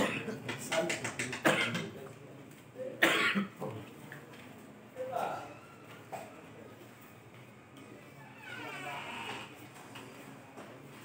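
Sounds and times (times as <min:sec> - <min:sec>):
person coughing: 0:00.0 - 0:00.4, 0:01.4 - 0:01.9, 0:03.0 - 0:03.6.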